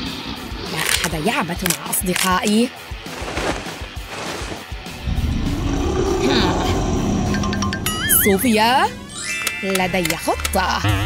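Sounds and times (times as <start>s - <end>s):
loud low rumble: 5.0s - 8.0s.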